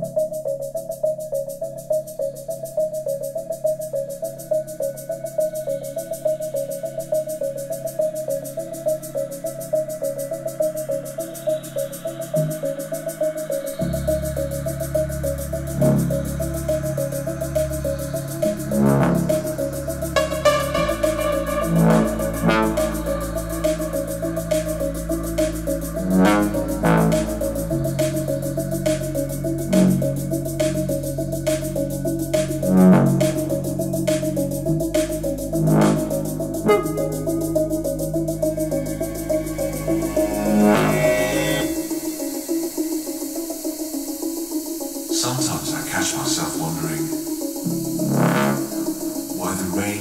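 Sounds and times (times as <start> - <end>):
recorded song over hi-fi: 0.0 - 50.0
deep bass: 13.8 - 41.8.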